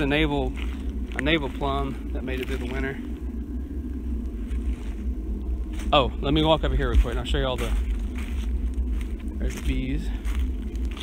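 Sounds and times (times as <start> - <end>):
low rumbling handling noise: 0.0 - 11.0.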